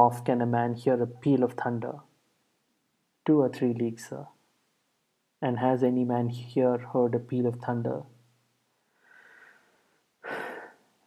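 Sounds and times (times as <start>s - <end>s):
man breathing: 8.8s - 11.0s.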